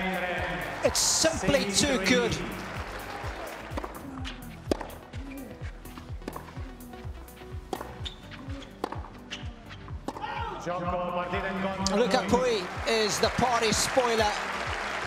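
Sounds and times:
music with thudding beat: 0:02.8 - 0:11.1
racket striking tennis ball: 0:03.6 - 0:06.6, 0:07.6 - 0:10.5.

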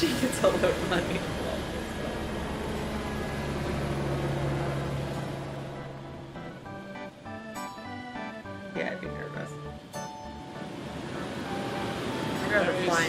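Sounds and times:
helicopter engine and rotor: 0:00.0 - 0:07.6, 0:09.8 - 0:13.0
music: 0:04.7 - 0:13.0.

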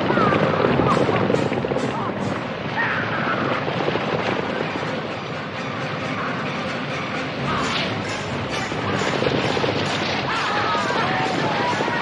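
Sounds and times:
galloping horses hoofbeats: 0:00.0 - 0:12.0
rolling wagon wheels: 0:00.0 - 0:12.0.

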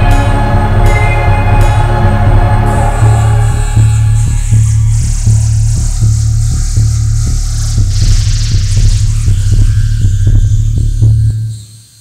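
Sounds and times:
industrial synth punk music: 0:00.0 - 0:11.7.

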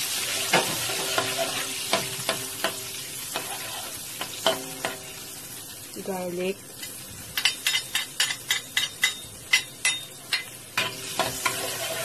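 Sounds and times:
garlic frying sizzle: 0:00.0 - 0:12.0
metal utensil tapping wok: 0:00.5 - 0:05.2, 0:06.8 - 0:12.0.

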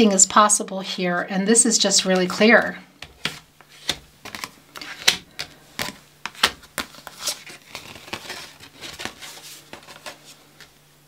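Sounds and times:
papery sliding of cards: 0:03.2 - 0:05.1, 0:05.8 - 0:10.7.

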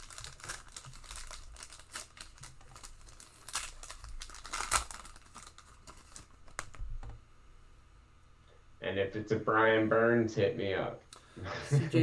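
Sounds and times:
foil wrapper tearing and crinkling: 0:00.0 - 0:06.8.

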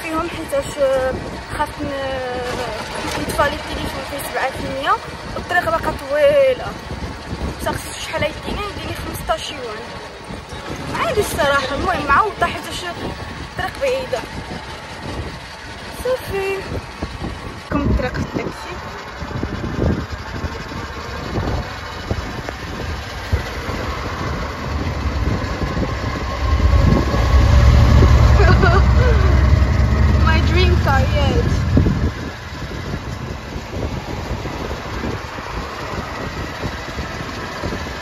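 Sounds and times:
road traffic noise: 0:00.0 - 0:38.0
loud low rumble: 0:16.6 - 0:38.0.

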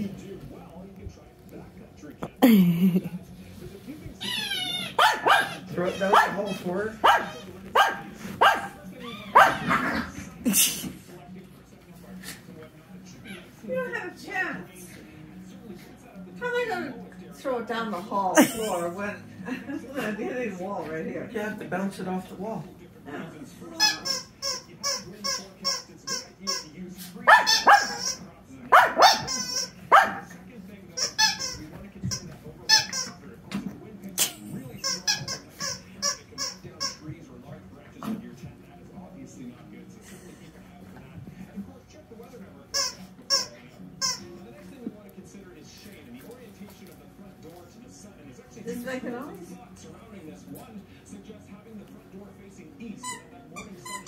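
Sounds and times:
small dog barking: 0:05.0 - 0:10.1, 0:27.3 - 0:28.0, 0:28.7 - 0:29.3, 0:29.9 - 0:30.3.

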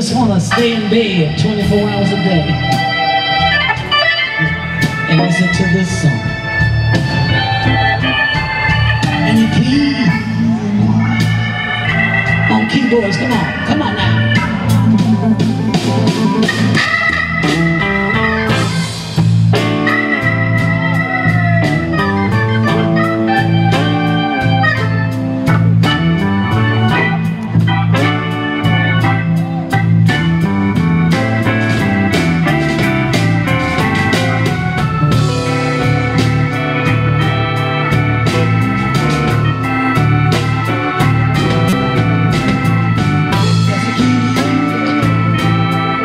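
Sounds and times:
drums: 0:00.0 - 0:46.0
electric bass: 0:00.0 - 0:46.0
organ-toned keyboard: 0:00.0 - 0:46.0.

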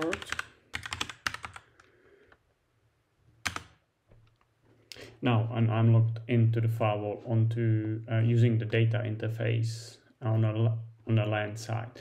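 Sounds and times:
computer keyboard keystrokes: 0:00.0 - 0:01.7, 0:03.4 - 0:03.8.

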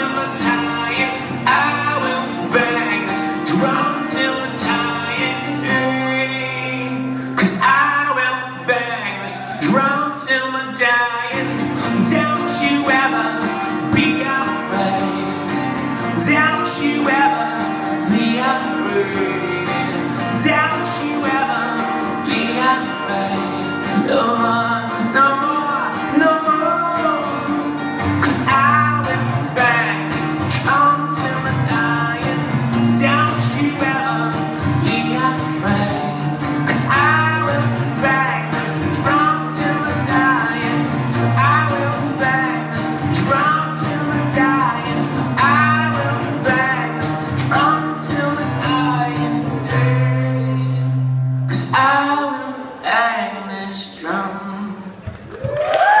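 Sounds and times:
strummed guitar chords: 0:00.0 - 0:54.8
melodic guitar lead line: 0:00.0 - 0:56.0.

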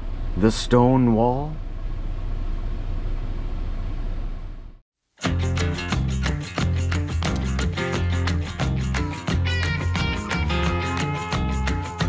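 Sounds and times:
road noise inside truck cab: 0:00.0 - 0:04.8.

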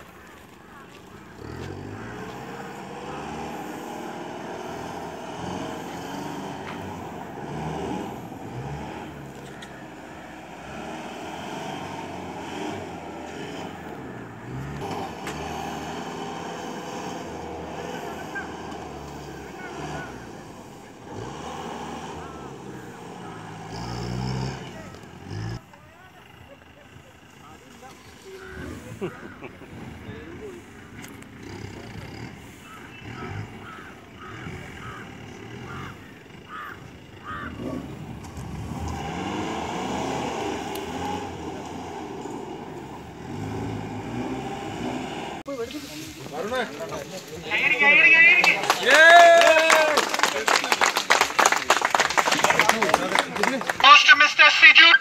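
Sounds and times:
jeep engine revving hard: 0:01.0 - 0:25.6, 0:28.4 - 0:45.5.

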